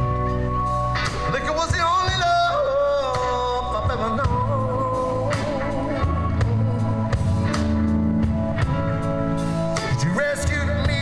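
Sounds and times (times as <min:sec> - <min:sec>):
live band playing slow song: 0:00.0 - 0:11.0
man singing long held notes: 0:01.3 - 0:07.6.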